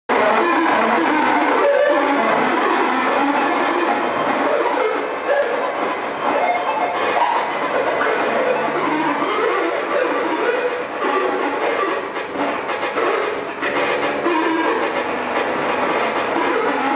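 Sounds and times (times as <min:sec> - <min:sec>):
electronic noise music: 0:00.1 - 0:16.9.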